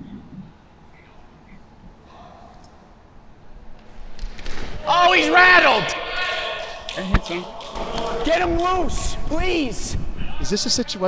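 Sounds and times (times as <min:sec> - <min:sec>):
man exclaiming: 0:04.8 - 0:07.5.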